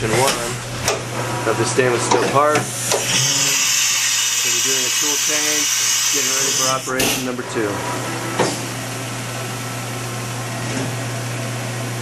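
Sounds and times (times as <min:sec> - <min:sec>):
machine humming with hiss: 0:02.6 - 0:10.4.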